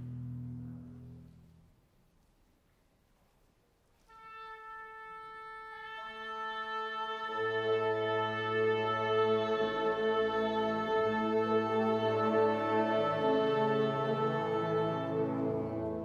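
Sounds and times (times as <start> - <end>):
orchestra tuning: 4.0 - 16.0.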